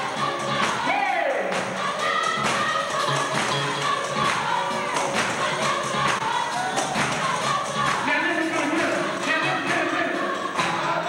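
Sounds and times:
gospel choir singing: 0.0s - 11.0s
steady beat: 0.0s - 11.0s.

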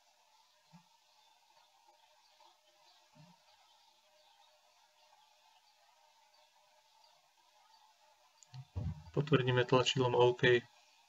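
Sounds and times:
faint steady hum: 0.0s - 11.0s
low thumps: 8.6s - 9.3s.

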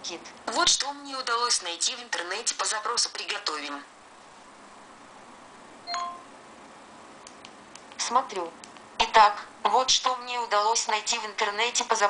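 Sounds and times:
electronic chime: 5.9s - 6.3s.

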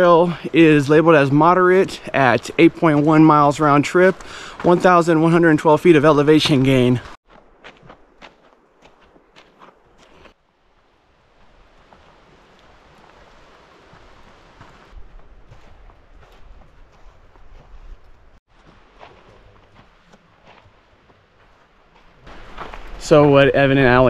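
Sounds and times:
footsteps crunching on dirt trail: 0.0s - 23.6s
faint light footsteps: 6.1s - 10.4s, 11.4s - 23.0s.

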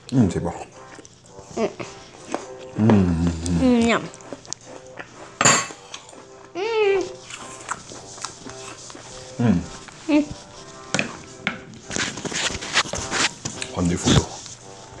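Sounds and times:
background music: 0.0s - 15.0s
person humming mmh savouring food: 1.4s - 4.5s, 5.8s - 11.2s.

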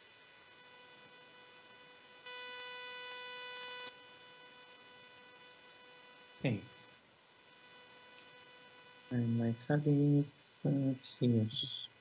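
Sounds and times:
faint electrical buzz: 0.0s - 12.0s.

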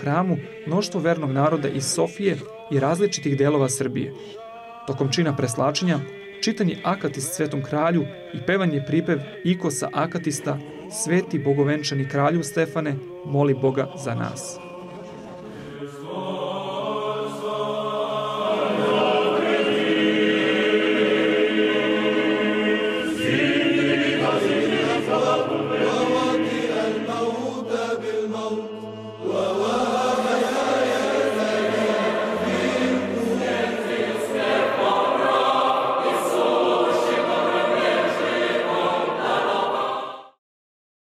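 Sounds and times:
choir chanting: 0.0s - 40.4s.

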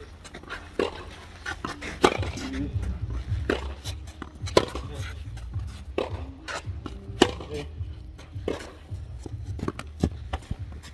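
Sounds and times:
racket hitting tennis ball: 0.0s - 10.9s.

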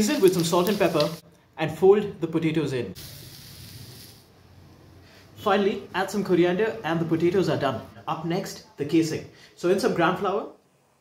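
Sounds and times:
food sizzling in oil: 0.0s - 1.2s, 3.0s - 4.3s.

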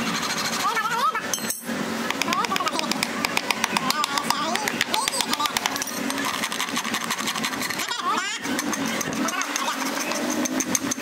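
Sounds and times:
hammer tapping horseshoe nails: 2.1s - 6.2s.

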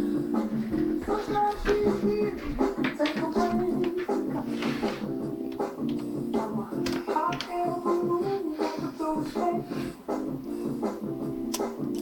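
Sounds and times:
music through small speaker: 0.0s - 12.0s
sharp snap-like clicks: 11.5s - 12.0s.

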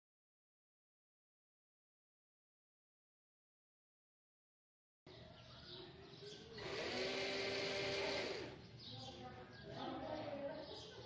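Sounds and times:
buzzing gear noise: 6.6s - 8.6s
small motors whining: 6.6s - 8.6s.

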